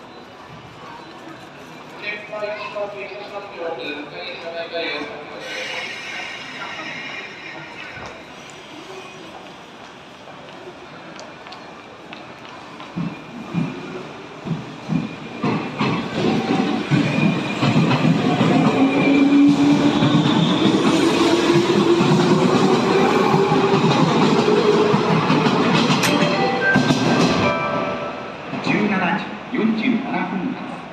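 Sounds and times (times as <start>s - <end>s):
train wheels rumbling: 9.2s - 29.0s.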